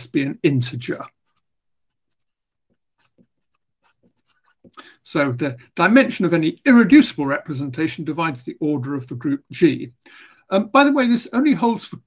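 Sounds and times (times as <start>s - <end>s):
marker pen scratching on paper: 0.9s - 4.8s.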